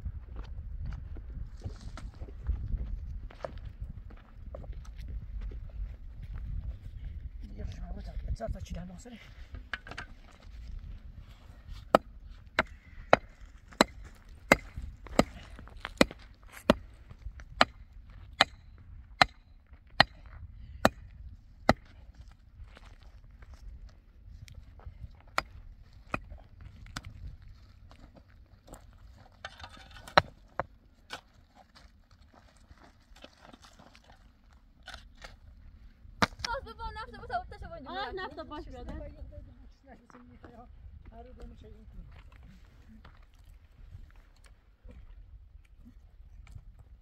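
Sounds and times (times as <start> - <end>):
digging tool striking stony soil: 11.8 - 22.2, 25.2 - 27.4, 28.7 - 31.8, 34.8 - 35.4, 36.2 - 36.5.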